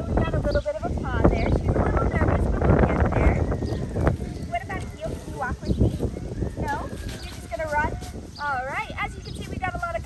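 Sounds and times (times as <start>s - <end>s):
footsteps crunching dry leaves: 3.3s - 10.0s.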